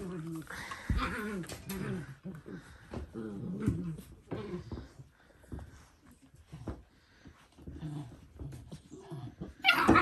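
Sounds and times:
dogs whining and grumbling: 0.0 - 5.1, 7.6 - 10.0.

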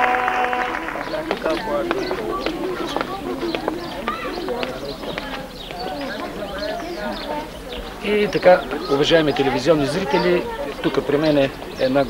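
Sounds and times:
birds chirping: 0.0 - 12.0
indistinct people's voices: 0.0 - 12.0.

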